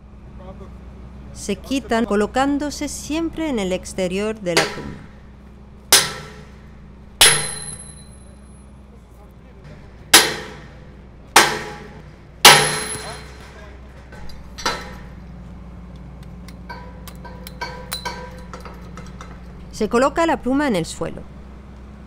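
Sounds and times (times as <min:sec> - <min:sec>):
hammer striking steel pins: 0:04.5 - 0:05.1, 0:05.9 - 0:08.3, 0:09.7 - 0:15.2, 0:16.7 - 0:19.5
bright metallic ring: 0:07.2 - 0:08.6.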